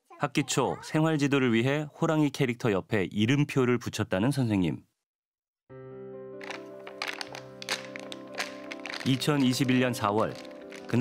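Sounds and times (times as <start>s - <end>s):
background music: 5.7s - 11.0s
plastic bottle crackling: 6.4s - 11.0s.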